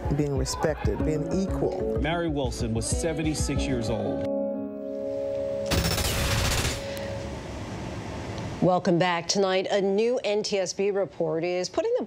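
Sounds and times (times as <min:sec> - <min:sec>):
sudden loud hit: 0:05.7 - 0:07.2.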